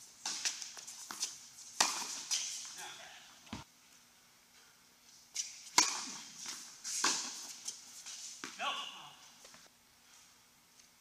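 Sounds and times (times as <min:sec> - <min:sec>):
tennis racket hitting ball: 0:00.2 - 0:02.9, 0:05.4 - 0:08.7
player shouting: 0:08.6 - 0:09.2.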